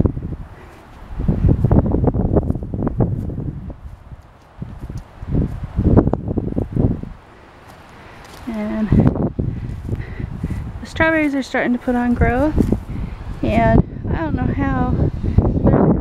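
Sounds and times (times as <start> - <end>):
footsteps on grass: 0.0 - 13.8
wind buffeting microphone: 0.0 - 16.0.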